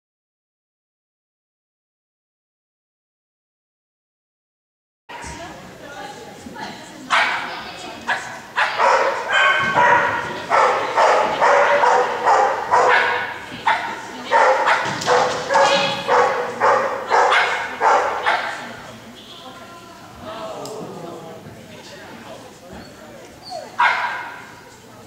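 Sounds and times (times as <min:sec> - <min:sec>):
dog barking: 0:07.1 - 0:18.7, 0:23.5 - 0:24.6.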